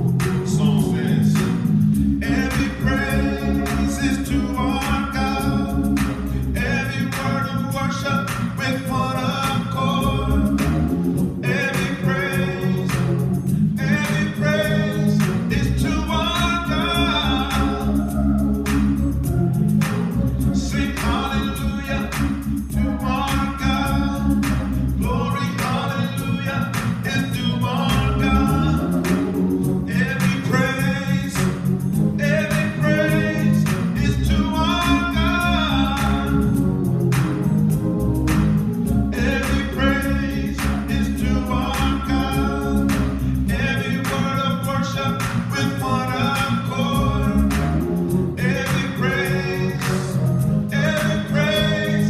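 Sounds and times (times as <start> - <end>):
gospel choir singing: 0.0 - 37.2, 38.9 - 47.8, 48.4 - 52.0
deep bass: 0.0 - 52.0
low musical accompaniment: 0.0 - 52.0.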